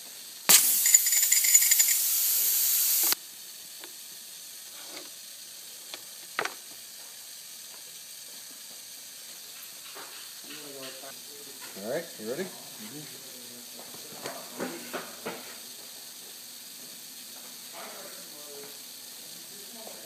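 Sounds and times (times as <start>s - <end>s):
faint air hiss: 0.1s - 3.5s
compressed air rush: 0.5s - 3.2s.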